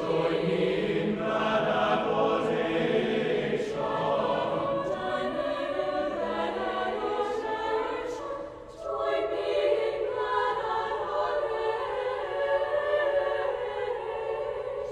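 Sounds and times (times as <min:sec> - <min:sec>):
choir singing sustained chords: 0:00.0 - 0:14.9.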